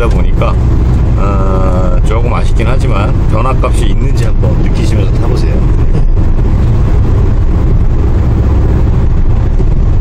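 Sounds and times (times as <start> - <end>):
engine and road noise in cabin: 0.0 - 10.0.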